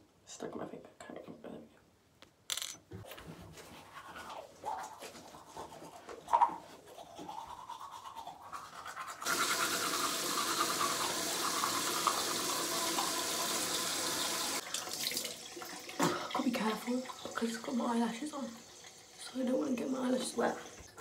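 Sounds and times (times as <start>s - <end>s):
teeth being brushed: 3.8s - 9.3s.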